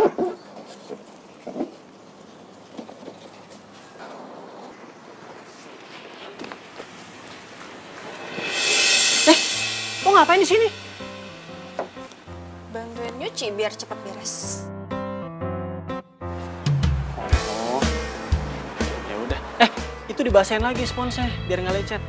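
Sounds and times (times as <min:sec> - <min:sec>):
loud hiss: 0:07.0 - 0:12.6.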